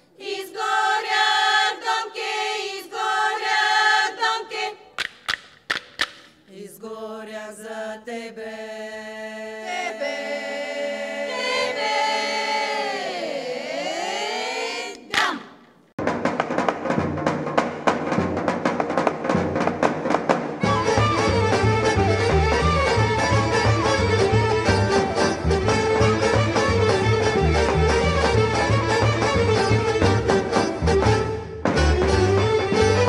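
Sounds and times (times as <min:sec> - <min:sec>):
women's choir singing a cappella: 0:00.0 - 0:04.9, 0:06.5 - 0:15.6
instrumental folk music: 0:16.3 - 0:33.0.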